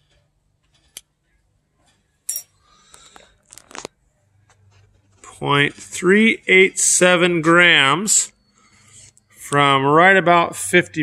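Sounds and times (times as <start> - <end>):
tweezers scraping: 8.3 - 9.4
light scratching: 8.6 - 9.4.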